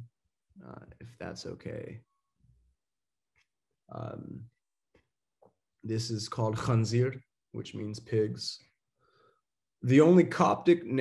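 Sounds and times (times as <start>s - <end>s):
man speaking: 0.6s - 2.0s, 3.9s - 4.5s, 5.9s - 8.6s, 9.8s - 11.0s.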